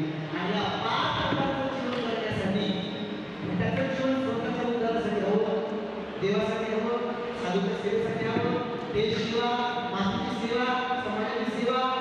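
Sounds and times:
man speaking over loudspeakers: 0.0s - 12.0s.

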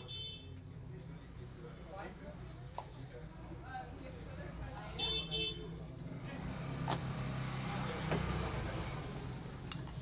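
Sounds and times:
road traffic rumbling: 0.0s - 10.0s.

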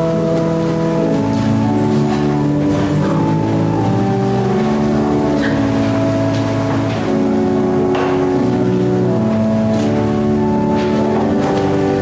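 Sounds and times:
organ playing slow chords: 0.0s - 12.0s.

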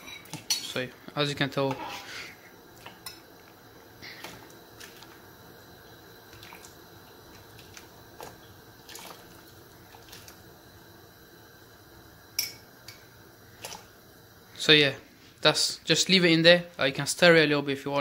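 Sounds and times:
spoon and bowl clinking on pot: 12.4s - 13.0s.

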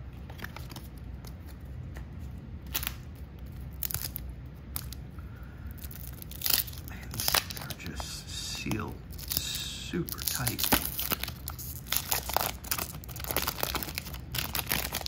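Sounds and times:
wax paper wrapper tearing: 2.6s - 5.0s, 5.8s - 15.0s.

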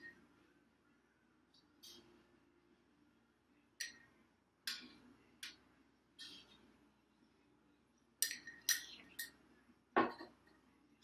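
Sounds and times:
metal utensil clinking on pot: 8.2s - 9.4s.

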